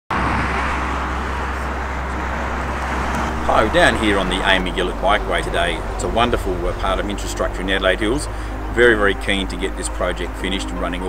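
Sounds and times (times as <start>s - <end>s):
low traffic rumble: 0.1s - 11.0s
tyres hissing on road: 0.1s - 11.0s.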